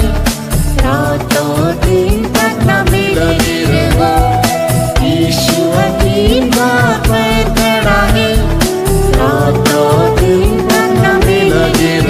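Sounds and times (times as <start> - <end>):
instrumental backing with steady beat: 0.0 - 12.0
person singing gliding melody: 3.0 - 12.0.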